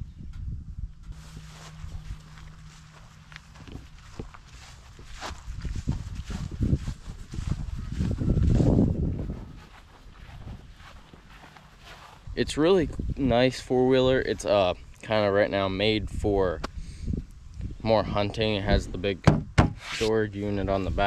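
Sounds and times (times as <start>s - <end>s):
low rumble: 0.0s - 14.5s
footsteps on grass: 1.1s - 12.6s.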